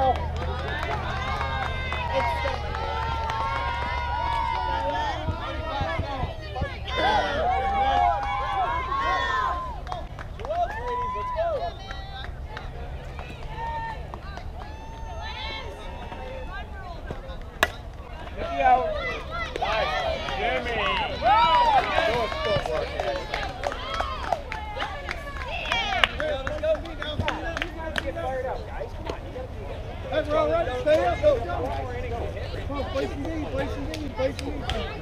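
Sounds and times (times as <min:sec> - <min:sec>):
children calling and cheering: 0:00.0 - 0:17.0, 0:17.7 - 0:26.6
bat cracking ball: 0:17.1 - 0:18.3.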